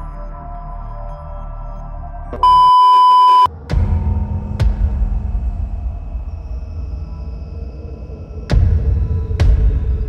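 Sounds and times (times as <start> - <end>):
background music: 0.0 - 10.0
loud steady electronic beep: 2.4 - 3.5.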